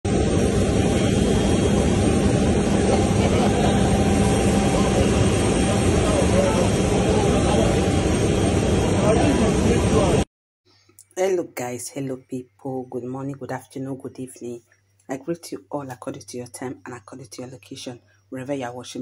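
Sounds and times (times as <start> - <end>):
jet engine noise: 0.1 - 10.3
people talking: 2.8 - 7.9, 8.9 - 10.2, 11.0 - 19.0.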